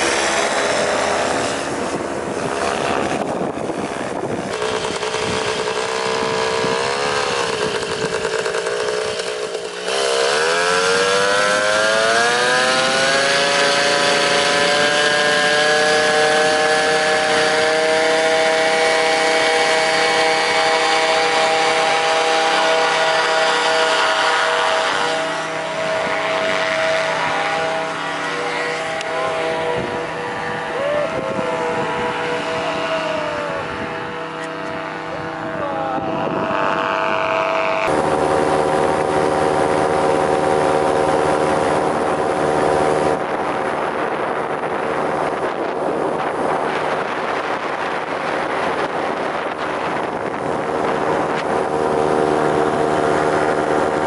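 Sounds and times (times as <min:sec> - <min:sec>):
paramotor engine and propeller: 0:00.0 - 0:54.0.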